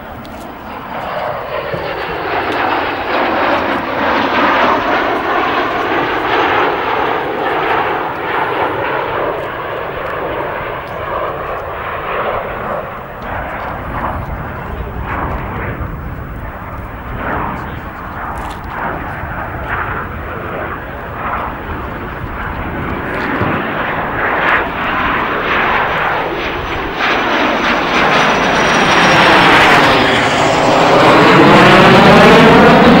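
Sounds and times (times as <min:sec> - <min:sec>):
jet flypast: 0:00.0 - 0:33.0.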